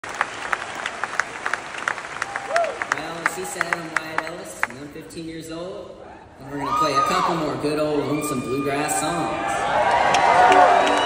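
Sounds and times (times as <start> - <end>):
audience applauding: 0.0 - 4.8, 9.8 - 11.0.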